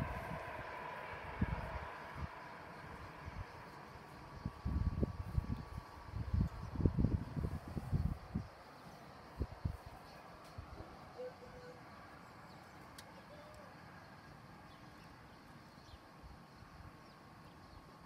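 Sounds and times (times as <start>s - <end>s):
wind buffeting microphone: 0.0s - 8.6s, 9.3s - 10.9s
faint outdoor background: 0.0s - 18.0s.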